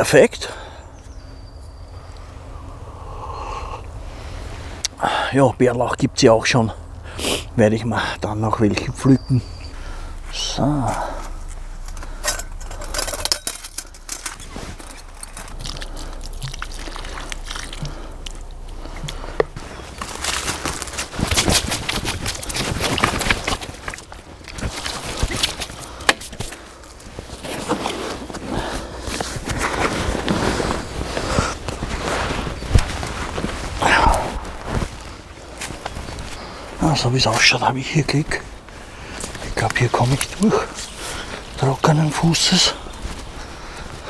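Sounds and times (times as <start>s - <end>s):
rustling of dry leaves: 0.0s - 44.0s
footsteps through dry leaves: 13.9s - 25.8s, 28.9s - 37.0s.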